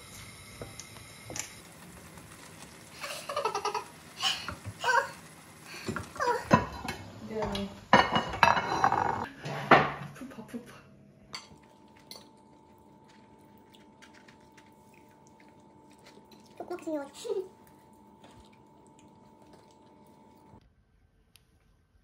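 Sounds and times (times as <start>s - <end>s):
spatula scraping frying pan: 8.1s - 9.7s
faint steady hum: 10.7s - 20.7s.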